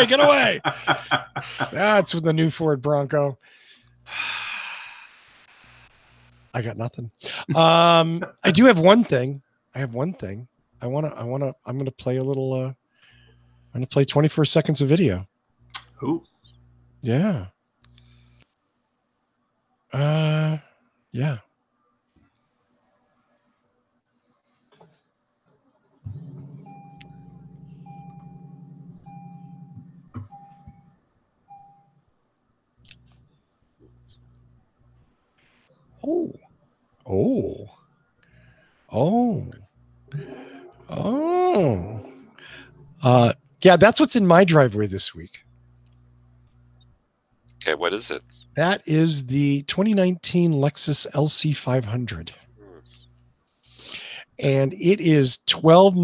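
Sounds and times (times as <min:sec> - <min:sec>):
man sighing: 0:00.1 - 0:01.8, 0:03.5 - 0:05.1, 0:40.1 - 0:42.7, 0:53.8 - 0:54.2
car engine starting and idling: 0:26.1 - 0:30.8
car warning chime beeping: 0:26.1 - 0:32.0.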